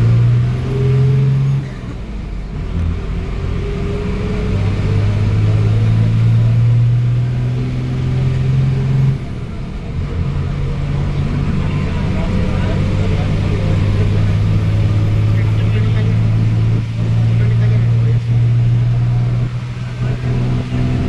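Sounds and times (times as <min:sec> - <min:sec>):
vehicle engine and road noise: 0:00.0 - 0:21.0.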